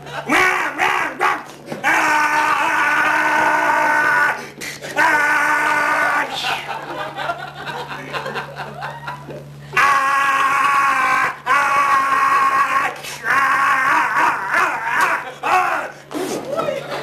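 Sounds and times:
audience laughter: 0:00.0 - 0:00.4, 0:06.2 - 0:09.5, 0:14.2 - 0:15.8, 0:16.4 - 0:17.0
man yelling into microphone: 0:00.3 - 0:06.5.

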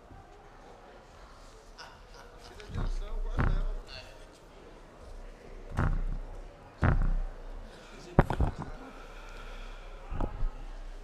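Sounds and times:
knocks on microphone: 0:02.8 - 0:03.8, 0:05.8 - 0:07.4.

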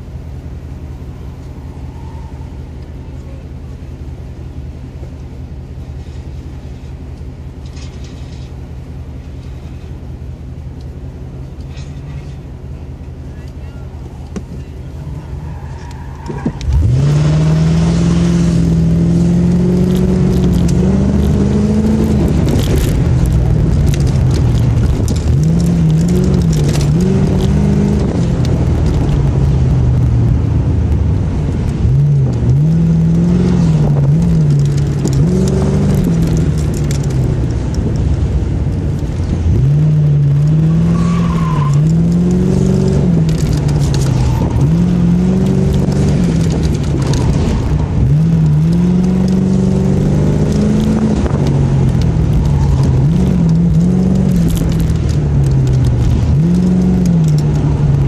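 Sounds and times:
car engine revving: 0:10.4 - 0:58.0.

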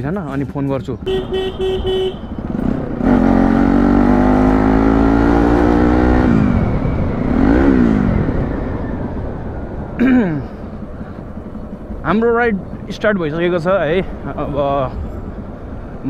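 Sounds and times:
horn beeps: 0:01.0 - 0:02.4
motorcycle engine pulling away: 0:01.0 - 0:16.0.

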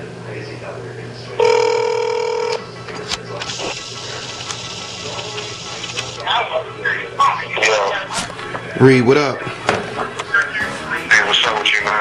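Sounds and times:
telephone ring tone: 0:01.4 - 0:02.6.

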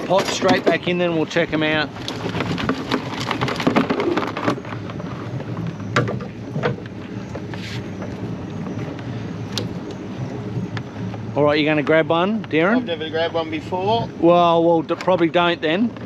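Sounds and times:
crabs clattering into plastic tub: 0:00.0 - 0:01.2, 0:01.9 - 0:05.2.

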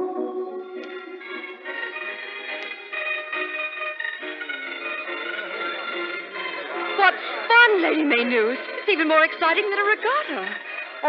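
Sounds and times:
organ music: 0:00.0 - 0:11.0.

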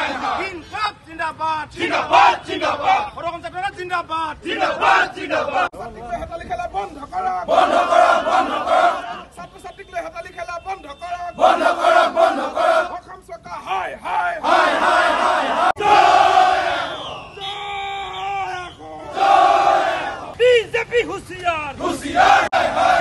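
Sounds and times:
crowd of men shouting slogans: 0:00.0 - 0:00.8, 0:01.6 - 0:03.2, 0:04.3 - 0:05.7, 0:07.3 - 0:09.4, 0:11.3 - 0:13.1, 0:13.7 - 0:17.3, 0:19.0 - 0:20.4, 0:21.7 - 0:23.0.

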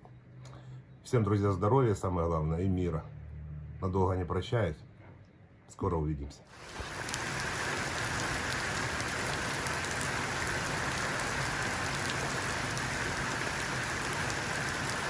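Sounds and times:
rain splashing into puddles: 0:06.5 - 0:15.0.

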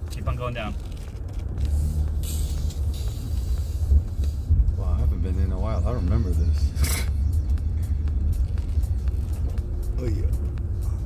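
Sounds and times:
car road and engine rumble: 0:00.0 - 0:11.0
short hiss: 0:01.7 - 0:04.5.

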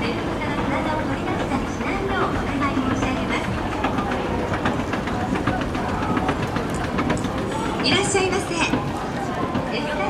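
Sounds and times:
escalator mechanical rumble: 0:00.0 - 0:10.0
escalator steps clicking: 0:00.0 - 0:10.0.

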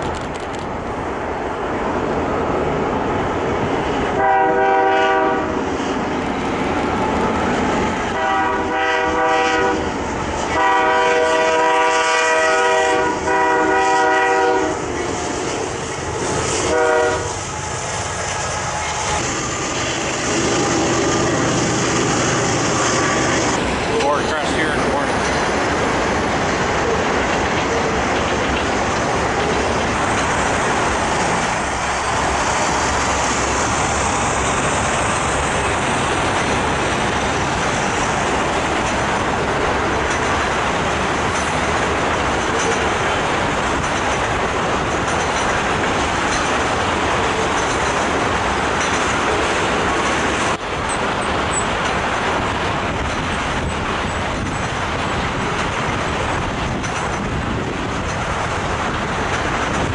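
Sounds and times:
freight train rumbling past: 0:00.0 - 0:59.9
locomotive air horn blasts: 0:04.2 - 0:05.6, 0:08.2 - 0:09.9, 0:10.5 - 0:14.8, 0:16.6 - 0:17.4.

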